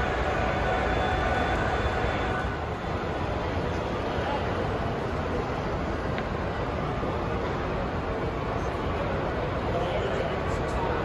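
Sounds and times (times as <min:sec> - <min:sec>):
murmur of large hall: 0:00.0 - 0:11.0.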